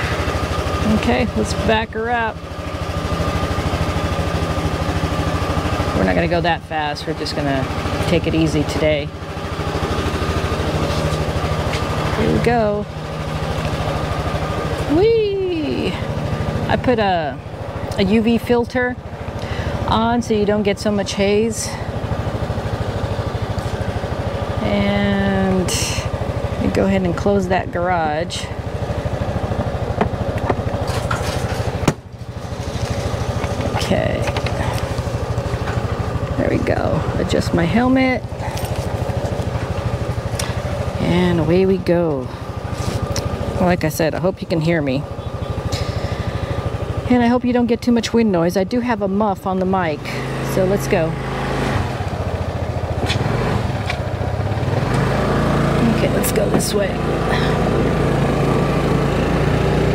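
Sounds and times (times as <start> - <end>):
scooter engine idling: 0.0 - 59.9.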